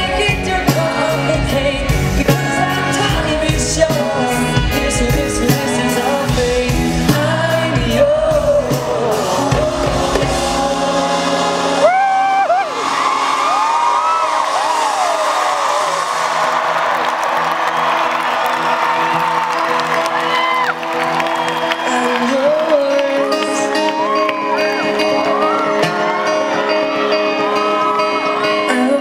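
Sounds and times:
lead singer singing: 0.0 - 13.0, 19.2 - 29.0
live band playing: 0.0 - 29.0
crowd cheering: 9.8 - 29.0.

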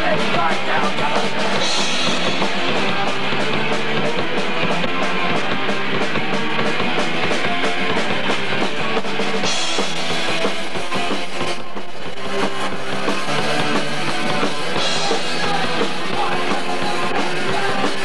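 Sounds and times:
bass guitar: 0.0 - 18.0
distorted electric guitar: 0.0 - 18.0
fast drum kit beat: 0.0 - 18.0.

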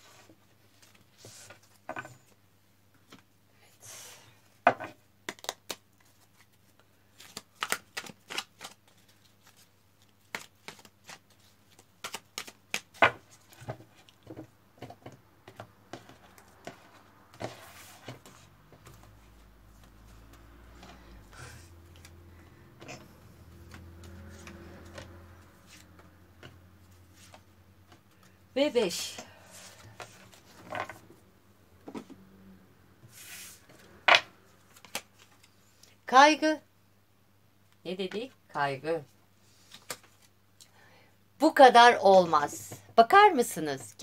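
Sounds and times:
cards shuffled on wooden table: 7.2 - 21.0, 22.9 - 28.4, 29.5 - 31.1, 33.0 - 35.6, 39.5 - 40.3.

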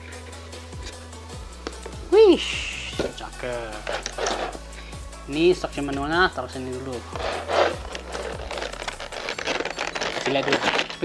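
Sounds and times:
plastic packaging crinkling: 7.2 - 11.0.

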